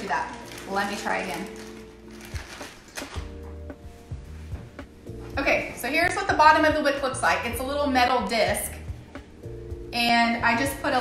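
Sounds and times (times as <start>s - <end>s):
sustained background music: 0.0s - 11.0s.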